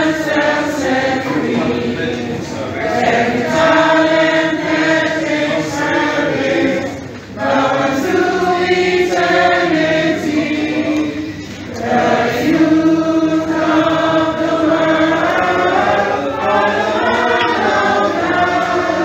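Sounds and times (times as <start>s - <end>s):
group singing held notes: 0.0s - 19.0s.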